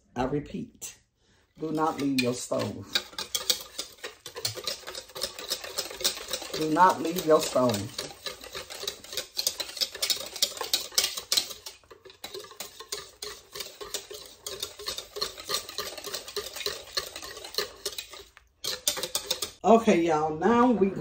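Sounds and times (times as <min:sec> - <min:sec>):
wire whisk beating in plastic bowl: 0:01.6 - 0:19.6.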